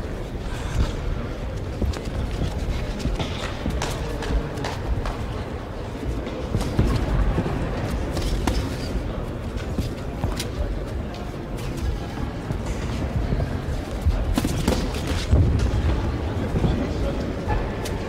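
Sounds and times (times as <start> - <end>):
gym hall rumble: 0.0 - 18.0.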